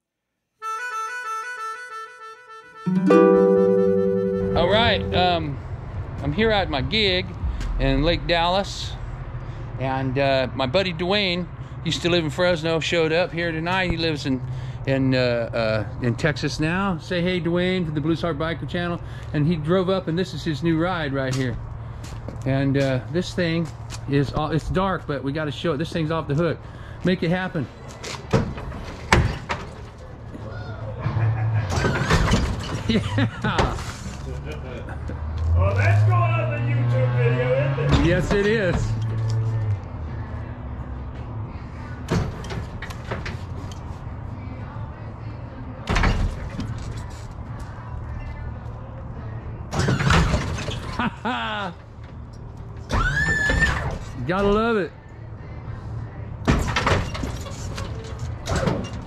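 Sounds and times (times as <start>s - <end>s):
people whooping and laughing: 30.4s - 32.0s, 51.0s - 51.8s.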